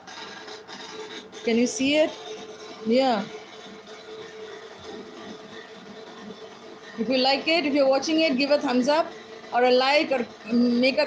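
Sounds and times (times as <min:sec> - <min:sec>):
crowd noise from television: 0:00.0 - 0:11.0
music from television speaker: 0:00.0 - 0:11.0.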